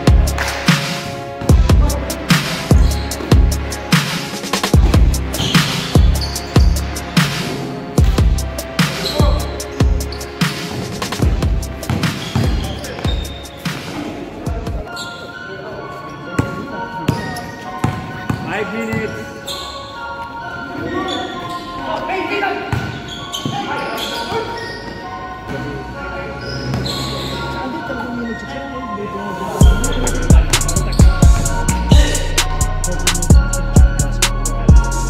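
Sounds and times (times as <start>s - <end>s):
players' voices: 0.0s - 35.0s
basketball bouncing on hard court: 10.7s - 13.3s, 16.4s - 19.0s, 22.7s - 23.6s.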